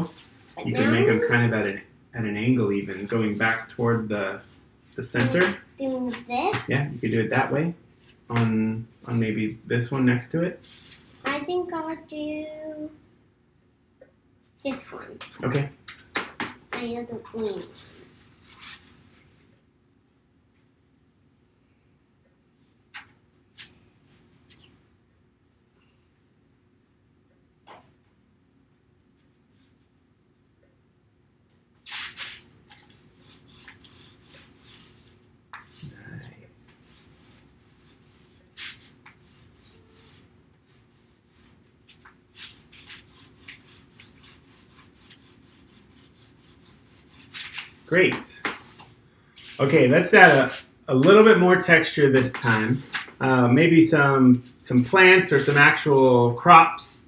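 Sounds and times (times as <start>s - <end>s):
crayon scratching on paper: 31.9s - 36.0s, 36.7s - 48.0s.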